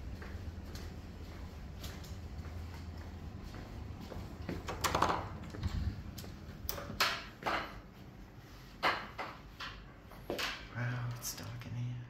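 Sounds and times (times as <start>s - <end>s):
footsteps: 0.0s - 4.7s
steady low hum: 0.0s - 12.0s.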